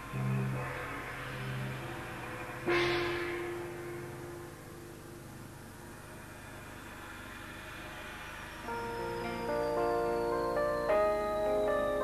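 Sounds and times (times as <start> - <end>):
large gongs struck: 1.6 - 5.5.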